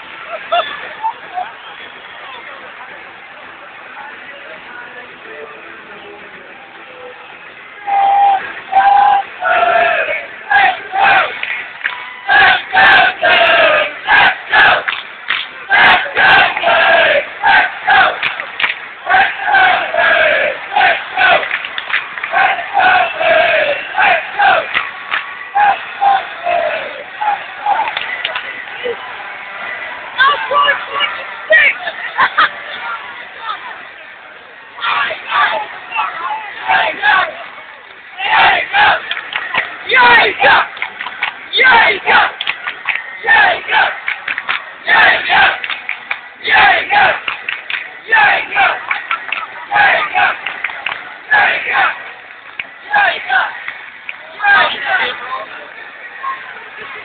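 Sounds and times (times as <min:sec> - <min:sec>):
crowd shouting and chanting: 0:00.0 - 0:57.0.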